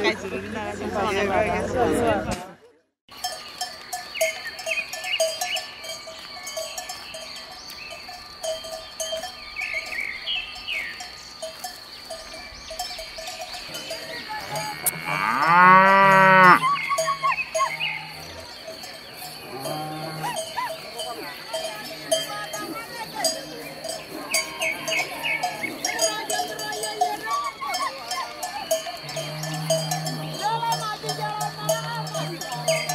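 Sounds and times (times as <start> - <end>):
cattle bells clanking: 3.1 - 32.9
cow mooing: 14.4 - 18.5, 19.4 - 20.5, 29.0 - 32.9.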